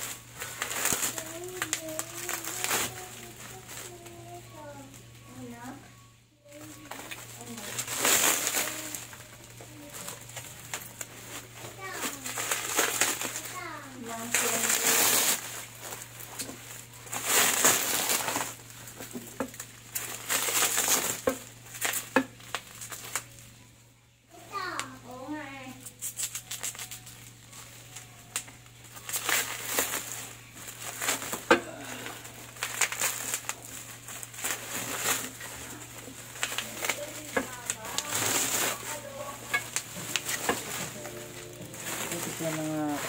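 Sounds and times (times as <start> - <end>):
bubble wrap crinkling: 0.0 - 23.7, 24.3 - 43.0
steady low hum: 0.0 - 43.0.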